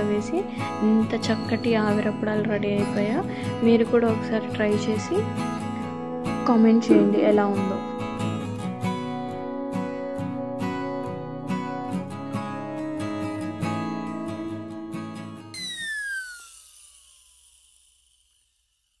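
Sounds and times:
plucked acoustic guitar music: 0:00.0 - 0:15.6
falling sweep with hiss: 0:15.6 - 0:18.5.

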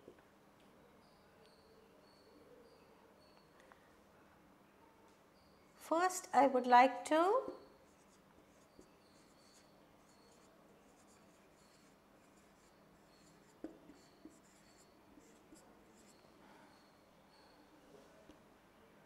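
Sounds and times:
marker squeaking on whiteboard: 0:07.6 - 0:17.6.

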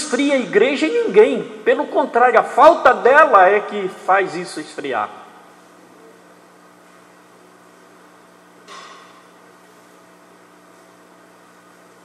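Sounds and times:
sound system electrical hum and hiss: 0:00.0 - 0:12.0.

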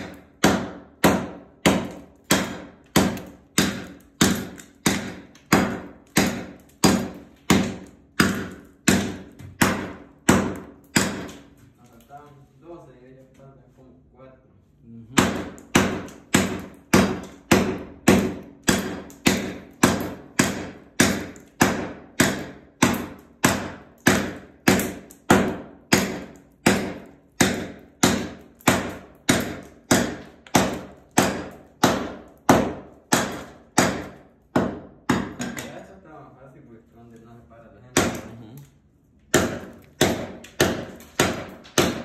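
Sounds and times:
hatchet chopping floor tiles: 0:00.0 - 0:11.5, 0:15.1 - 0:35.8, 0:37.9 - 0:38.5, 0:39.2 - 0:42.0.

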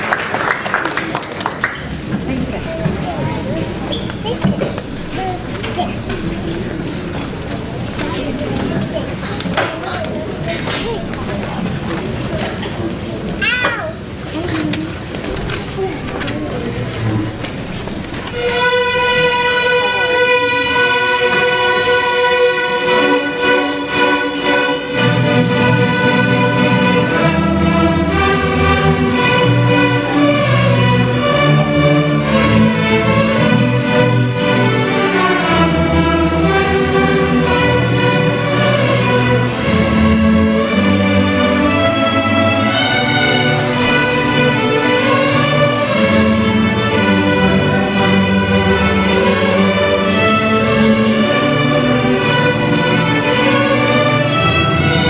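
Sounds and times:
string orchestra playing: 0:00.0 - 0:13.3, 0:16.3 - 0:55.0.

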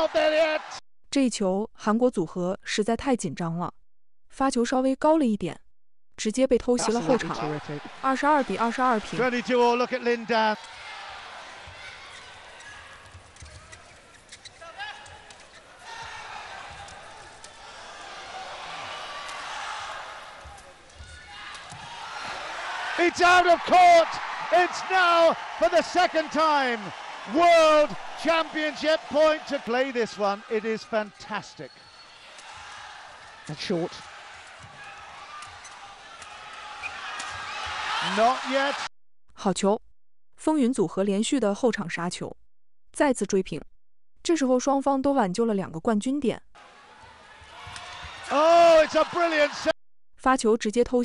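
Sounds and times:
arena crowd noise: 0:00.0 - 0:00.8, 0:06.8 - 0:38.9, 0:46.6 - 0:49.8.

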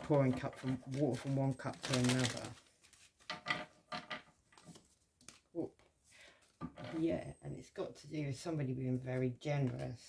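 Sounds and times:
cards being shuffled: 0:00.1 - 0:03.3, 0:04.6 - 0:05.5.

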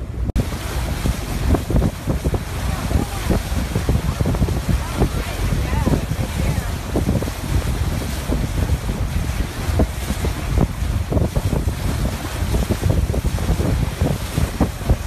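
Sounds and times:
bow wave breaking along hull: 0:00.0 - 0:15.0
wind buffeting microphone: 0:00.0 - 0:15.0.

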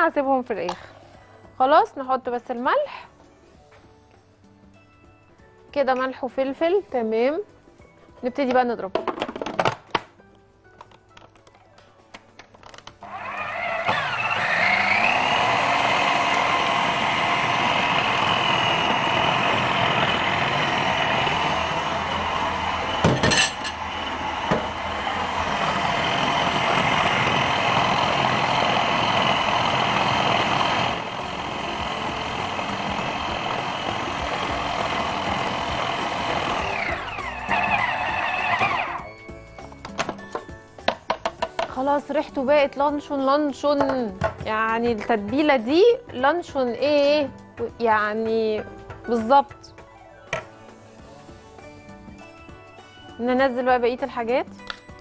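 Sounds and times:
food processor motor whine: 0:13.0 - 0:39.8.

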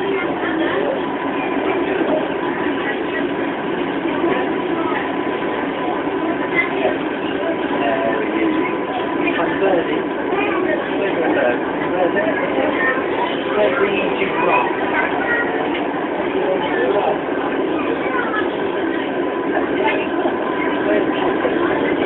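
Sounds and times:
passengers chattering: 0:00.0 - 0:22.0
train carriage running noise: 0:00.0 - 0:22.0.

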